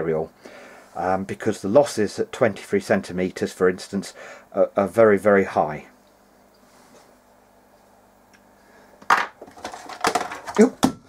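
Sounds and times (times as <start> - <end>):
clatter of small objects dropping: 9.0 - 10.7.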